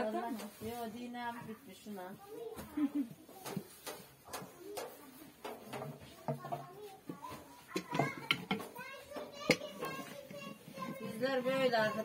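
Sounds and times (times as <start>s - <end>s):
child's voice: 2.2s - 3.7s, 6.1s - 12.0s.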